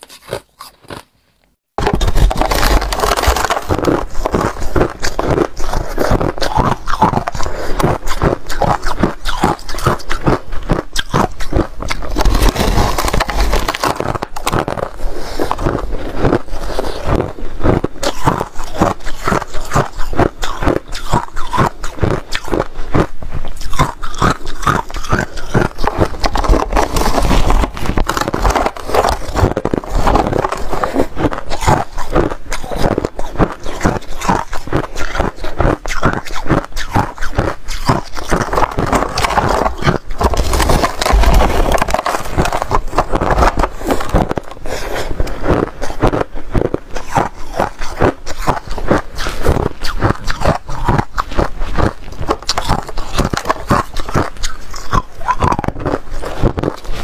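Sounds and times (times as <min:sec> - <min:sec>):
person crunching shaved ice: 0:00.0 - 0:01.2, 0:01.8 - 0:57.0.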